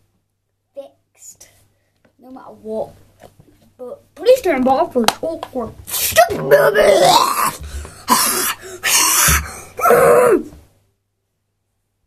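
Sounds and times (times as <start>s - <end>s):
boy speaking: 0.7s - 1.6s, 2.2s - 3.0s, 3.8s - 7.6s
boy breathy vocal bursts: 7.3s - 9.9s.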